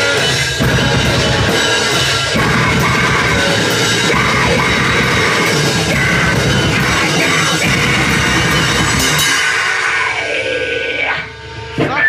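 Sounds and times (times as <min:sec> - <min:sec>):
grindcore band playing: 0:00.0 - 0:12.0
guitar amplifier feedback whine: 0:00.0 - 0:12.0
loud shout: 0:09.2 - 0:12.0.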